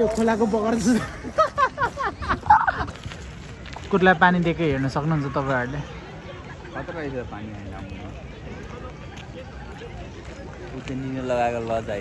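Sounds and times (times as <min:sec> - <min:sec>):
man laughing excitedly: 0:00.9 - 0:02.9.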